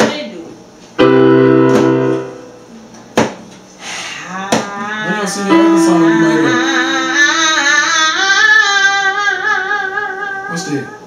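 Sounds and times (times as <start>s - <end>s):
keyboard playing piano chords: 1.0s - 2.9s, 5.1s - 8.2s.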